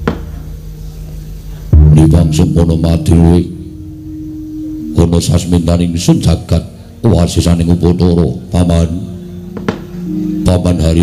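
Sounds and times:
sharp knock: 0.0s - 0.4s, 9.6s - 9.9s
higher ringing notes: 0.0s - 11.0s
deep gong strike: 1.6s - 7.1s, 9.0s - 11.0s.

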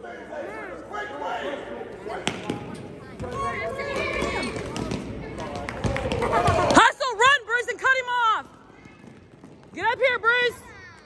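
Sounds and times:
voices of players and spectators: 0.0s - 11.0s
basketball bouncing on court: 2.3s - 6.8s, 8.4s - 11.0s.

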